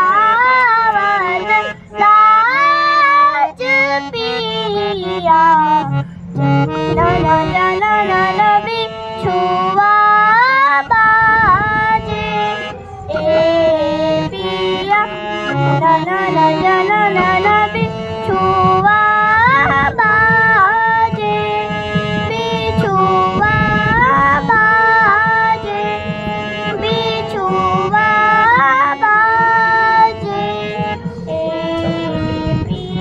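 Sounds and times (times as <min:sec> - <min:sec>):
girl singing: 0:00.0 - 0:06.0, 0:06.8 - 0:33.0
harmonium held notes: 0:00.0 - 0:33.0.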